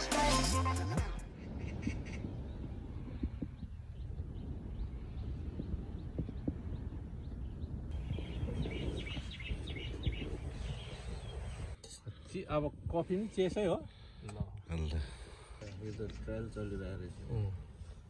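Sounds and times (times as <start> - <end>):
wind rumbling on microphone: 1.2 - 18.0
faint bird chirps: 1.4 - 11.8.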